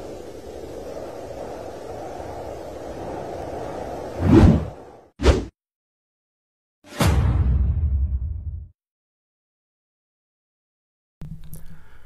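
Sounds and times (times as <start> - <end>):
low rushing noise: 0.0 - 5.1
whooshes: 0.0 - 5.5.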